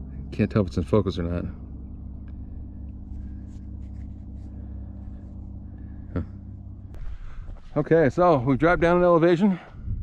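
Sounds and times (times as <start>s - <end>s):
wind buffeting microphone: 9.7s - 10.0s.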